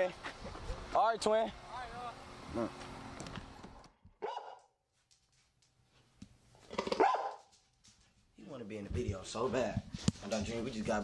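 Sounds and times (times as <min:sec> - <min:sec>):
dog barking: 0:04.2 - 0:04.7, 0:06.9 - 0:07.5.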